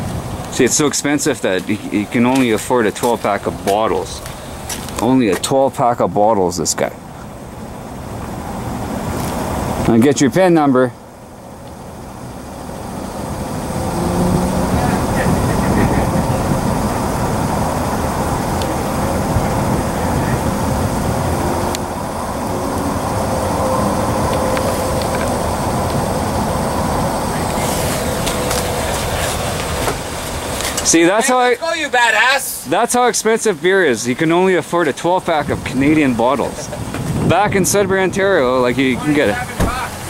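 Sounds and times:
vehicle engine idling: 0:00.0 - 0:40.0.

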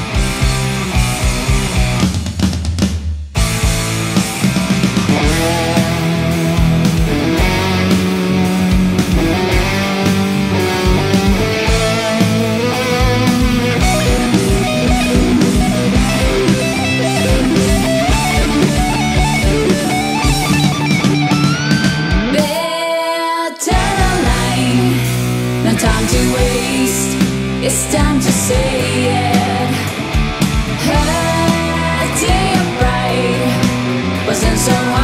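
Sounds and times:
guitar slide: 0:00.0 - 0:02.1, 0:03.4 - 0:22.5, 0:23.7 - 0:35.0
bass and drums: 0:00.0 - 0:22.6, 0:23.7 - 0:35.0
distorted electric guitars: 0:00.0 - 0:22.7, 0:23.6 - 0:35.0.

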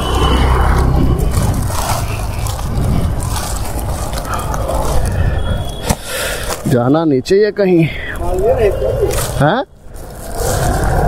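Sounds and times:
sharply rising sound: 0:00.0 - 0:02.0
engine rumbling: 0:00.0 - 0:06.8
people talking: 0:06.7 - 0:09.7.

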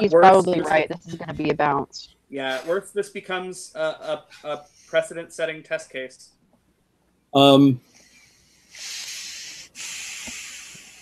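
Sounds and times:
hissing noise on call line: 0:07.4 - 0:11.0.

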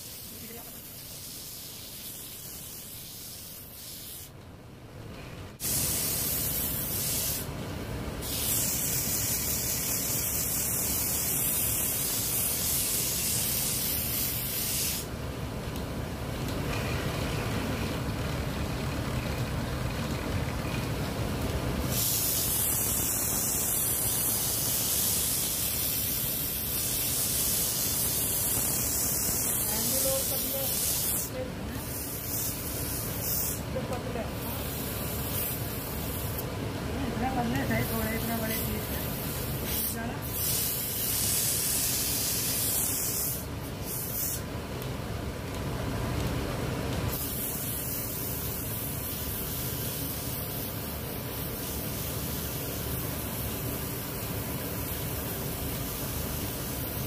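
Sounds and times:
sandpaper hissing on wood: 0:00.0 - 0:04.3, 0:05.6 - 0:07.5, 0:08.2 - 0:15.1, 0:21.8 - 0:36.5, 0:37.3 - 0:44.5, 0:47.1 - 0:57.0.

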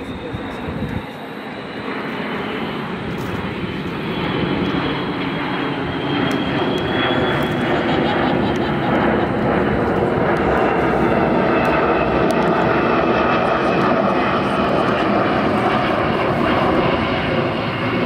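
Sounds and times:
jet plane flying overhead: 0:00.0 - 0:18.0.

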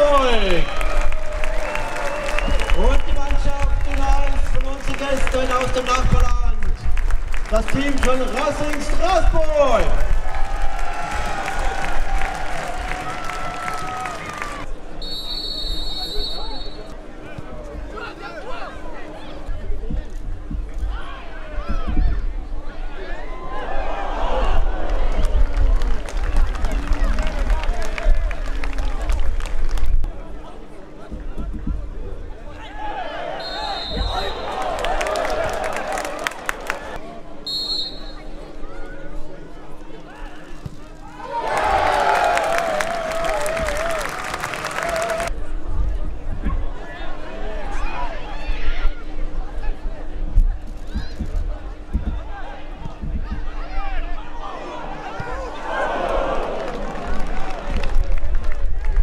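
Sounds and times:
spectators applauding: 0:00.2 - 0:14.7, 0:24.8 - 0:29.9, 0:34.2 - 0:37.0, 0:41.2 - 0:45.3, 0:55.8 - 0:59.0
referee's whistle blasts: 0:15.0 - 0:16.9, 0:33.4 - 0:34.5, 0:37.4 - 0:38.4
din of many voices: 0:44.9 - 0:57.8.

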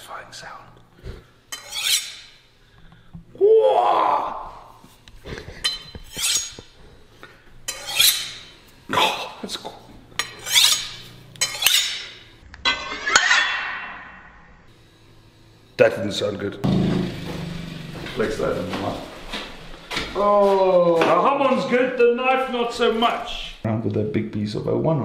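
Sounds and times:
steel scraping and clinking on blade: 0:01.5 - 0:02.4, 0:05.6 - 0:06.8, 0:07.7 - 0:08.6, 0:10.2 - 0:14.2.

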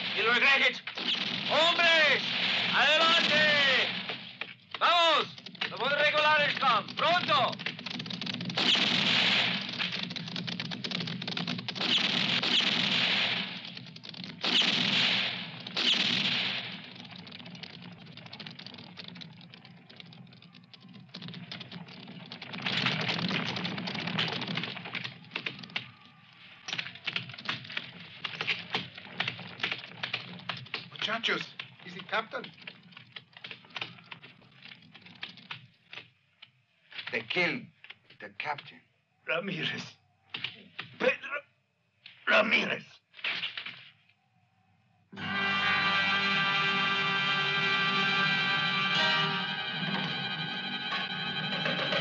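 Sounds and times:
horse hooves on packed dirt: 0:16.8 - 0:35.4.

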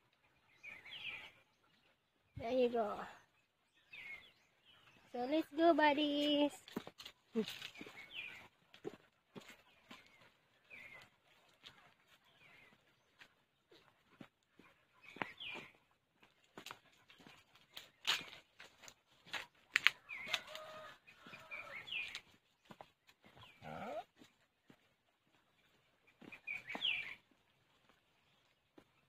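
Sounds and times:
footsteps on dirt path: 0:03.9 - 0:29.0.

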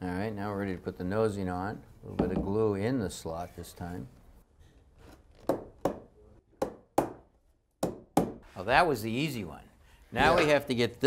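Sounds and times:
sharp wooden knocks: 0:05.4 - 0:08.4.

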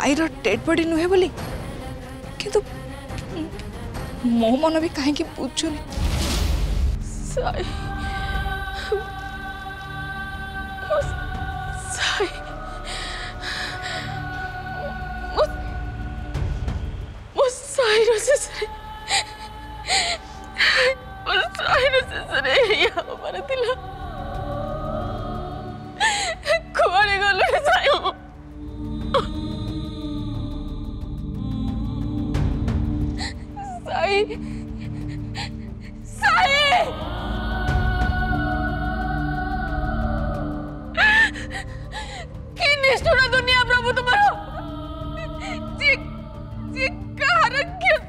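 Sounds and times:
soft background music: 0:00.0 - 0:48.0
woman sobbing and wailing: 0:07.3 - 0:09.6, 0:10.8 - 0:15.9, 0:17.4 - 0:28.4, 0:29.0 - 0:29.7, 0:33.1 - 0:38.1, 0:40.8 - 0:48.0.

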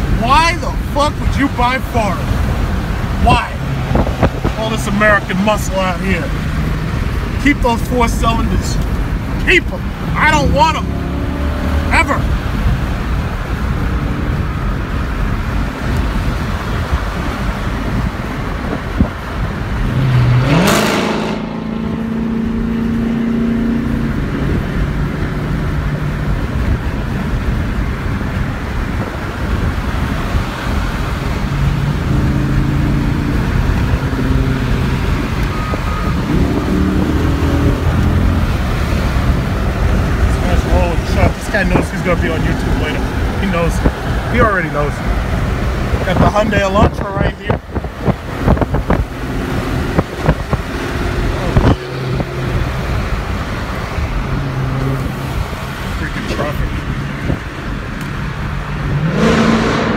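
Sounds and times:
car engine: 0:00.0 - 0:59.9
road noise: 0:00.0 - 0:59.9
rush of noise: 0:28.1 - 0:59.9.

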